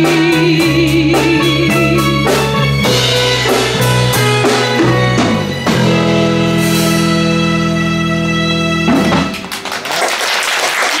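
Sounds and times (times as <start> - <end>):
audience applause: 9.2 - 11.0.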